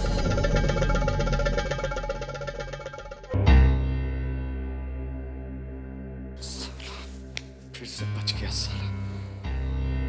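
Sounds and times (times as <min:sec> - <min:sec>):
music with fast repeating pulse: 0:00.0 - 0:03.5.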